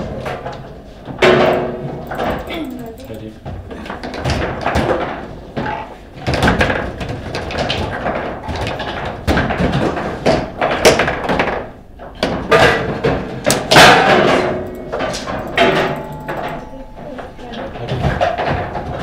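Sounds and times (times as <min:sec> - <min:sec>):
foosball rods slammed and spun: 0:00.0 - 0:02.5, 0:03.6 - 0:16.6, 0:17.8 - 0:19.0
foosball ball knocking and clacking: 0:00.1 - 0:02.5, 0:03.8 - 0:19.0.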